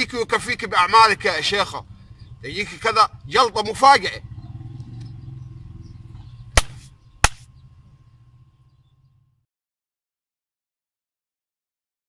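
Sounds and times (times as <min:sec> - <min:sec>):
low steady hum: 0:00.0 - 0:09.5.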